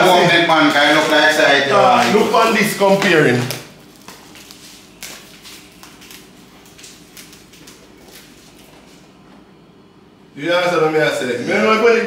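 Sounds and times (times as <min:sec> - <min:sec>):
faint footsteps: 0:00.0 - 0:09.5.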